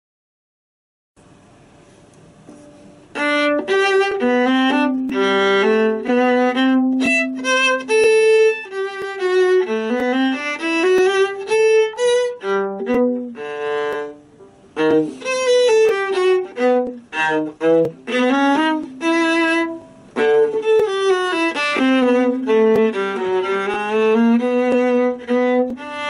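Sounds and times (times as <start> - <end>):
solo viola playing: 2.5 - 26.0.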